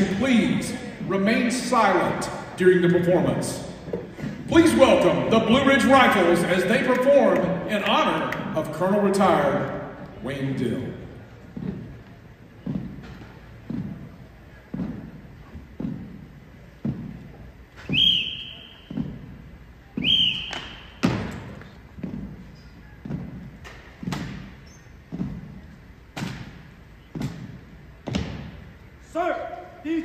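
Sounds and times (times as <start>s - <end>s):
marching heel stamps on hardwood: 12.6s - 17.3s.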